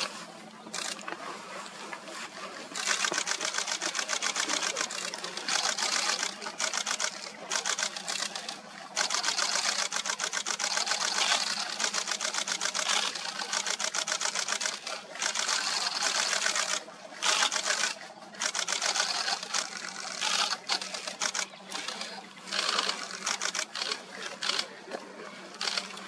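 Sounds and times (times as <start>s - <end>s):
camera shutters firing in bursts: 0.8s - 1.0s, 2.8s - 24.7s, 25.6s - 26.0s.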